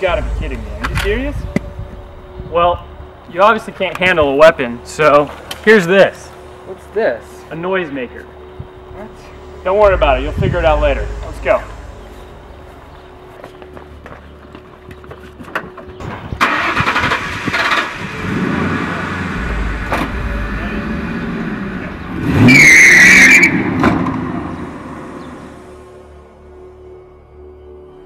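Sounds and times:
high squeal: 7.2 - 13.4, 19.2 - 23.8
car engine starting and revving: 9.5 - 13.2, 16.4 - 25.8.

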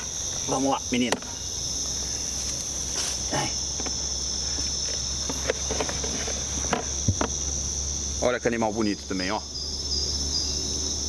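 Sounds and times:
night insects chorus: 0.0 - 11.0
light knocks and rustles: 3.8 - 7.4.

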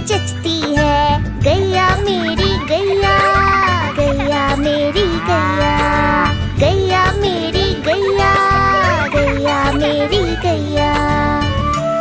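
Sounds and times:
children's song backing music: 0.0 - 12.0
cow mooing: 2.1 - 6.6, 7.3 - 10.4.

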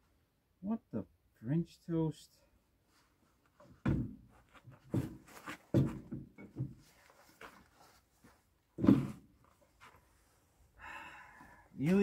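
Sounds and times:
metal clunks and knocks: 3.7 - 4.3, 4.9 - 6.8.

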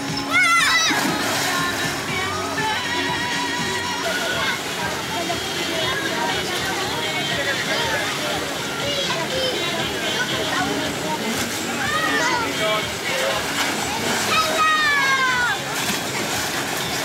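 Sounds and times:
children talking and shouting: 0.0 - 17.0
water splashing into a pool: 0.0 - 17.0.

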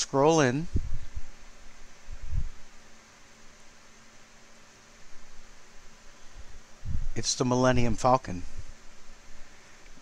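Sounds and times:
electric fan running: 0.0 - 10.0.

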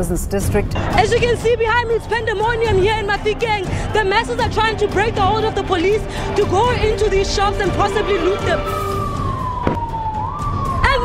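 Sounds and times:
police siren wailing: 6.4 - 11.0
sharp crack: 9.6 - 10.0.

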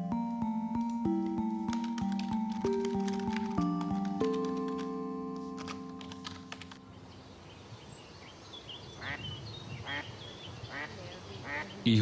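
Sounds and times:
music: 0.0 - 7.0
small birds chirping: 6.8 - 12.0
duck quacking: 9.0 - 9.2, 9.8 - 10.1, 10.7 - 11.8.

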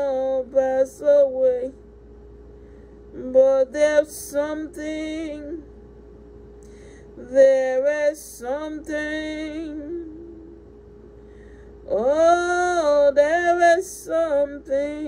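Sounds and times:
person singing worship song: 0.0 - 1.8, 3.1 - 5.7, 7.0 - 10.7, 11.7 - 15.0
faint steady hum: 0.0 - 15.0.

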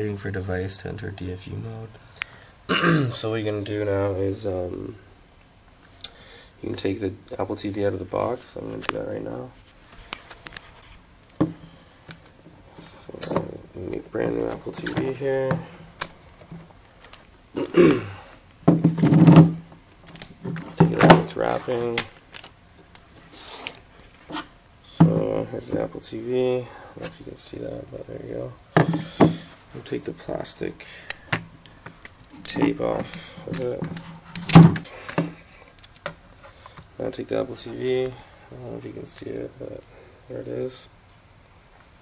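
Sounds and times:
plastic wrapping rustling: 14.2 - 17.4, 18.8 - 24.6
man making wordless sounds: 24.9 - 28.6, 32.4 - 33.9.

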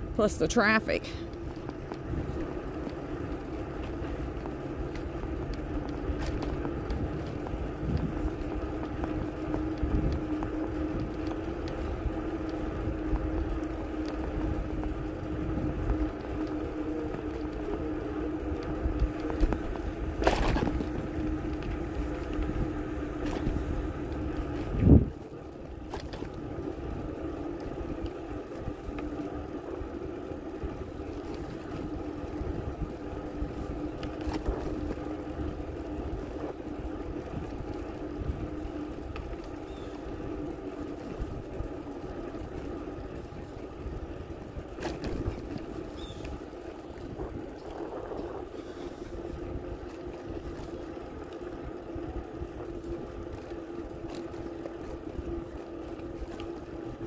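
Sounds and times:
bicycle rolling on concrete: 0.0 - 57.0.

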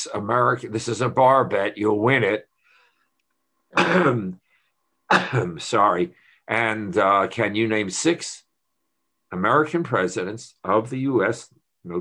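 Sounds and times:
man clearing his throat: 3.7 - 4.4, 5.1 - 5.6.

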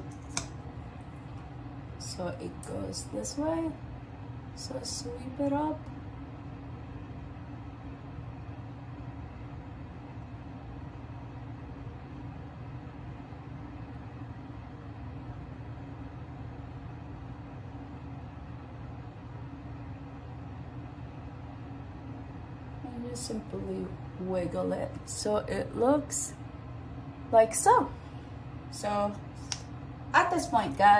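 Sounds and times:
low background hum: 0.0 - 30.9.

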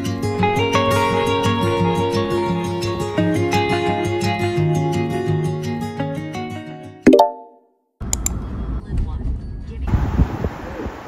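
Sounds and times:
pop sound effect with ringing tone: 7.1 - 7.6.

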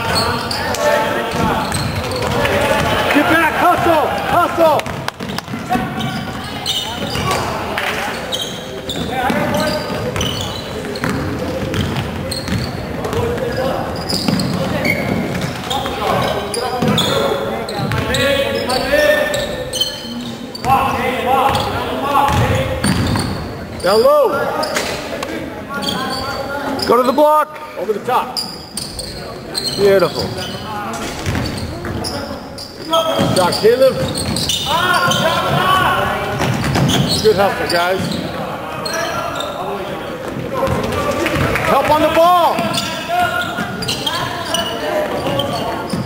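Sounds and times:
people calling out: 0.0 - 5.0, 31.5 - 46.0.

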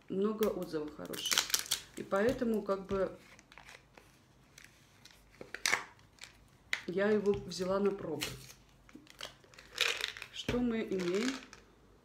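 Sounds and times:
person speaking: 0.0 - 1.4, 2.0 - 3.4, 6.8 - 8.6, 10.3 - 11.6
handling noises at a table: 1.1 - 11.7.

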